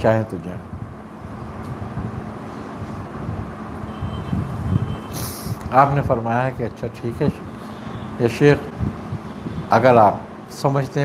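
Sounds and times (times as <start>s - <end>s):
low rumbling background noise: 0.0s - 11.0s
high thin beeping tone: 3.9s - 5.2s.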